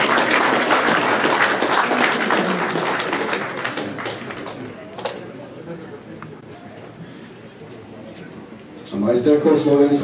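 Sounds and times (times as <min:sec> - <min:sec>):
audience applauding: 0:00.0 - 0:04.8.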